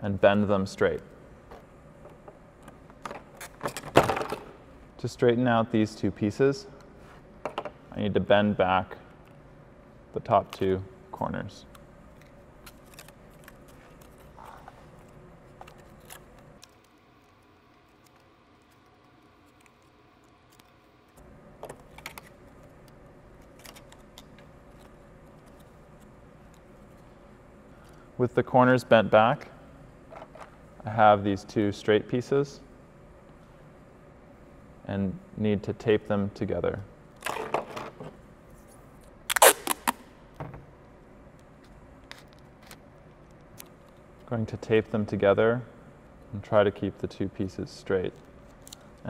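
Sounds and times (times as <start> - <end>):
packing tape ripping off roll: 39.3 - 40.1.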